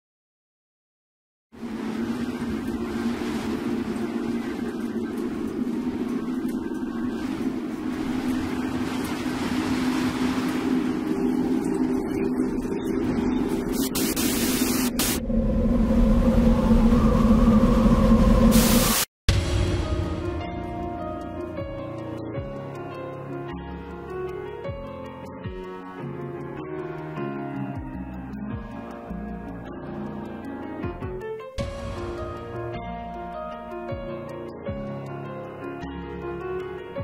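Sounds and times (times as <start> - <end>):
wash of noise: 1.6 - 22.7
low droning tones: 1.6 - 24.3.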